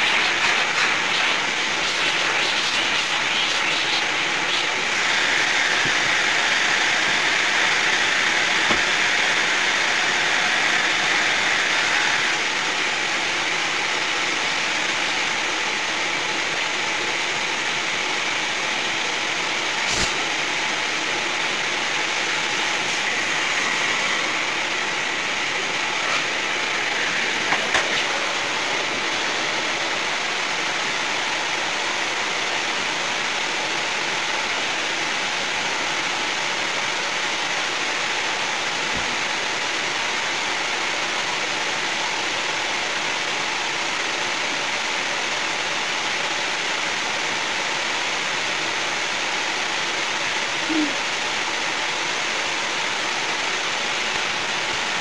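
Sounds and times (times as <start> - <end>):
vacuum cleaner running: 0.0 - 55.0.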